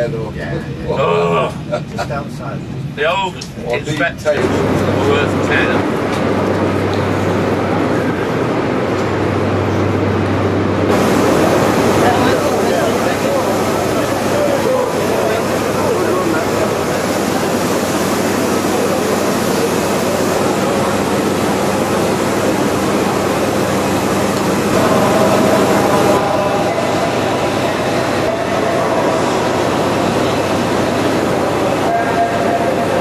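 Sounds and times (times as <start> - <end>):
train rumbling on rails: 0.0 - 33.0.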